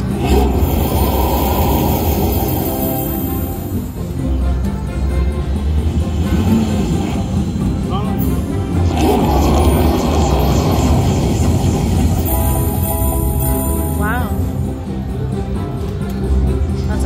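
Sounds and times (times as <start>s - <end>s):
slot machine bonus music: 0.0s - 15.8s.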